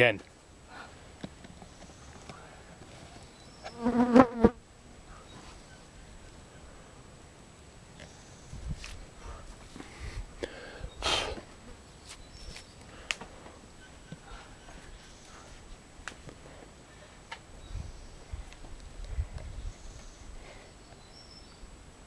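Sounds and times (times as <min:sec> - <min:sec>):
flying insect buzzing: 0:03.6 - 0:04.6
short breathy hiss: 0:09.2 - 0:11.5.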